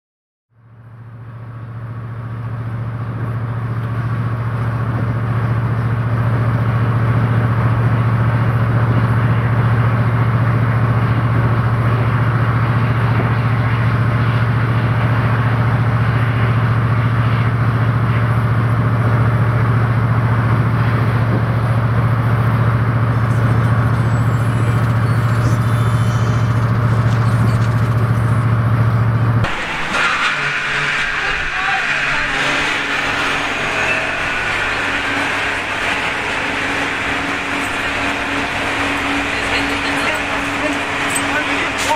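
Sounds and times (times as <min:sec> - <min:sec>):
outdoor street sound: 0:00.5 - 0:41.9
van engine and road noise: 0:00.6 - 0:41.9
voices: 0:23.0 - 0:28.5, 0:29.5 - 0:41.9.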